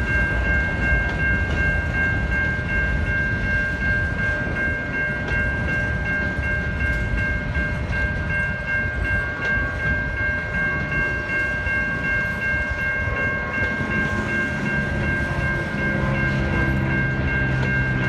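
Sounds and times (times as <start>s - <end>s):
freight train rumbling past: 0.0s - 18.0s.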